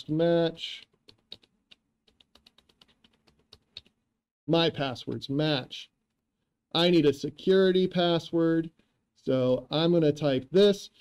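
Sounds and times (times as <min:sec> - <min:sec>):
faint keyboard typing: 0:00.7 - 0:04.0.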